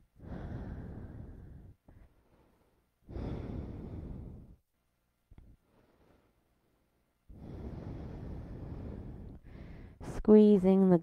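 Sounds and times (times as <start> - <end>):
deep breath: 0.0 - 4.7, 5.4 - 10.1.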